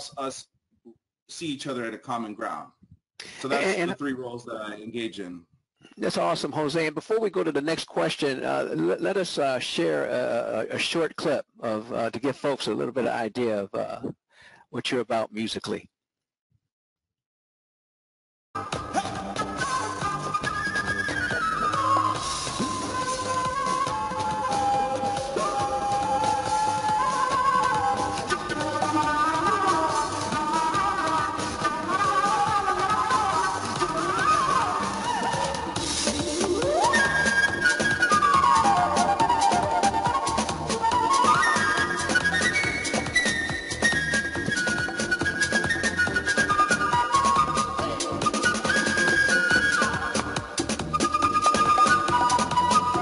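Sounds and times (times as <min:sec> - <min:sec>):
electronic backing track: 0:18.6 - 0:53.0
flute melody of held notes: 0:18.6 - 0:53.0
conga drums: 0:34.8 - 0:53.0.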